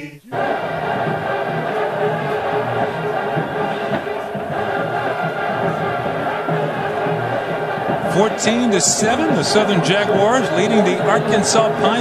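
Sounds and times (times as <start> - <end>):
marching band brass playing: 0.3 - 12.0.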